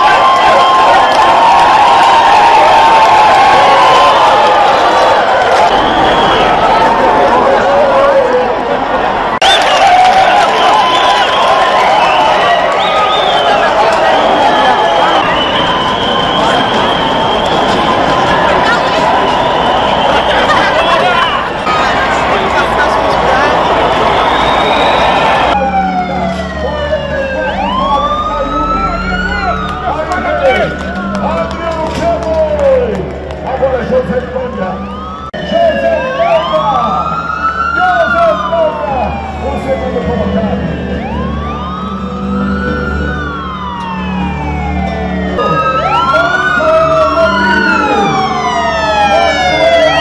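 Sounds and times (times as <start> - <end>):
siren wailing: 0.0 - 8.4, 9.4 - 32.8, 34.2 - 50.0
crowd of runners: 0.0 - 25.6, 29.0 - 35.4.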